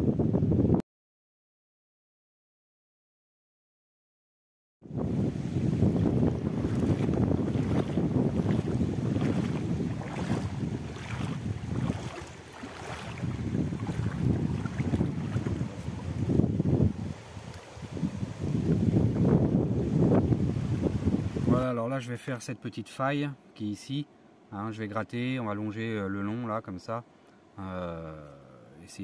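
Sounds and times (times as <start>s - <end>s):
wind buffeting microphone: 0.0s - 0.8s, 4.9s - 21.6s
water running over stones: 6.6s - 16.2s.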